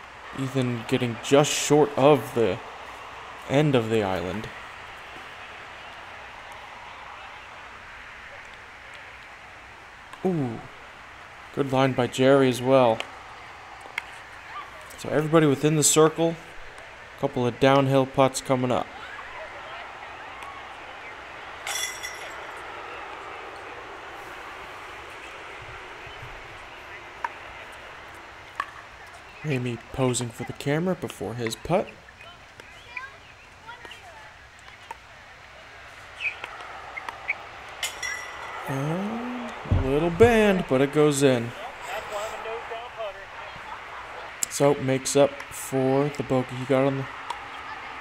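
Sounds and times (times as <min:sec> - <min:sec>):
soft outdoor hiss: 0:00.0 - 0:48.0
disc striking basket chains: 0:21.6 - 0:22.6, 0:37.7 - 0:38.7.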